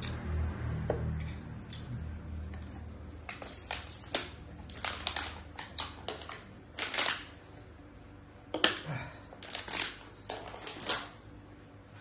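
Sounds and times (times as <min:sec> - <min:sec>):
crickets chirping: 0:00.0 - 0:12.0
plastic food box clicks and rustles: 0:03.3 - 0:07.3, 0:09.4 - 0:11.2.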